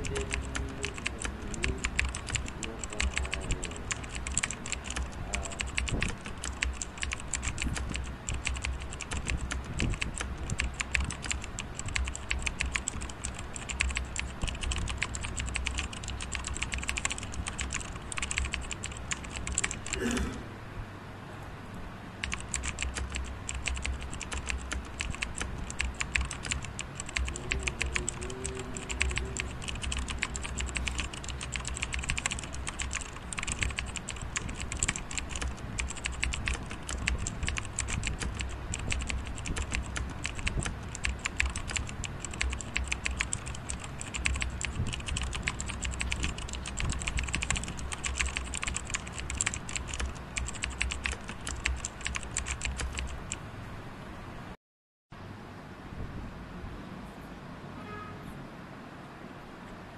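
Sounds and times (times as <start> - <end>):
typing on computer keyboard: 0.0 - 20.1, 22.2 - 53.4.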